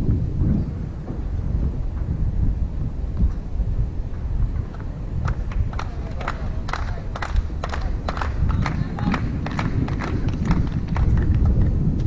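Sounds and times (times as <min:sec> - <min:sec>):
wind buffeting microphone: 0:00.0 - 0:12.0
spectators clapping: 0:04.7 - 0:11.8.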